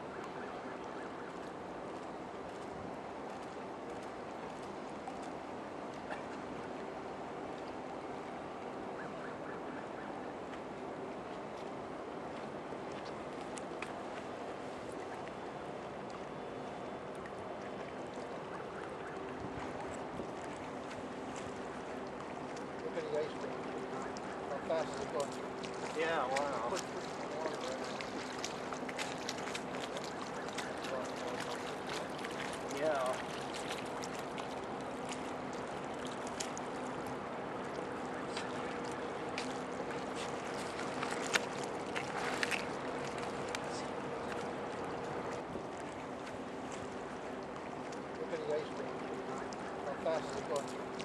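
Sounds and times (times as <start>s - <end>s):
water rushing: 0.0s - 51.0s
wind: 0.0s - 51.0s
ship engines humming: 3.1s - 51.0s
wind on microphone: 19.4s - 20.6s.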